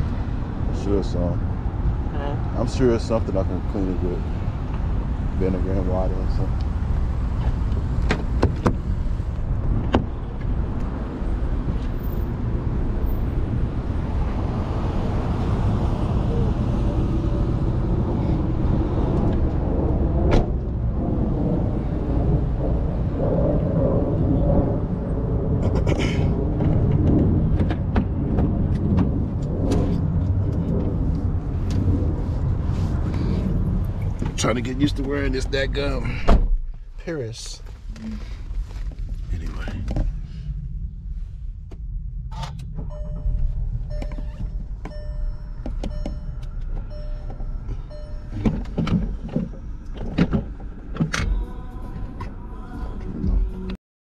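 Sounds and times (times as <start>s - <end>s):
car engine rumbling: 0.0s - 53.8s
short beeps: 42.9s - 48.6s
sharp clicks and knocks: 48.4s - 51.4s.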